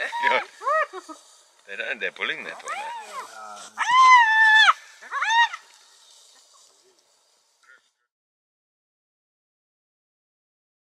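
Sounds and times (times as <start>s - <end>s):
hyena squealing: 2.4s - 5.7s.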